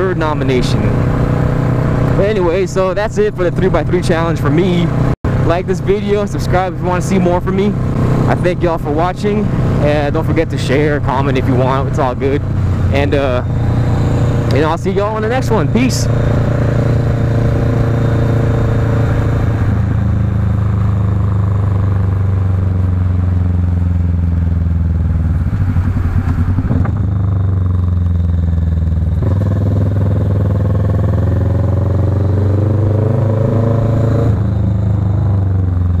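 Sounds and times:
motorcycle engine running: 0.0s - 36.0s.

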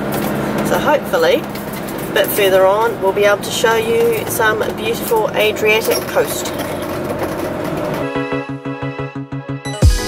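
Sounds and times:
road and engine noise: 0.0s - 8.1s
electronic music with beat: 8.0s - 10.0s.

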